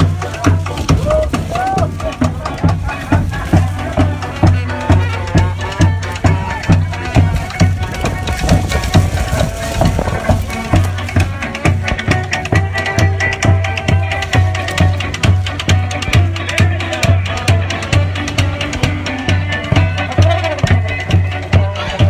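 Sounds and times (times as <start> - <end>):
marching street band playing: 0.0 - 22.0.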